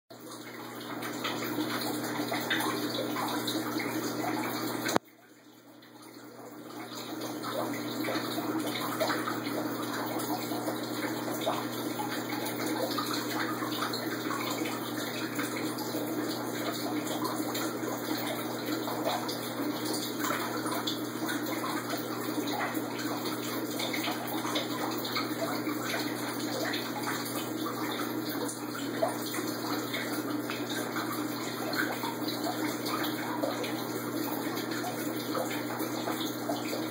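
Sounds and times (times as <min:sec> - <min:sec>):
running splashing water: 0:00.1 - 0:36.9.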